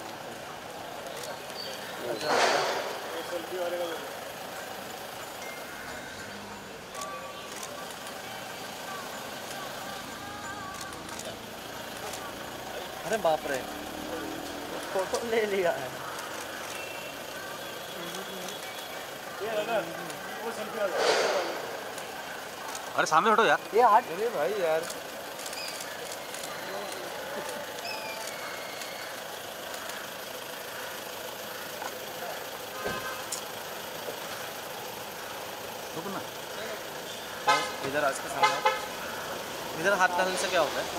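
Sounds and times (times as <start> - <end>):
car engine idling: 0.0 - 40.9
outdoor street noise: 0.0 - 40.9
thump: 2.3 - 2.9.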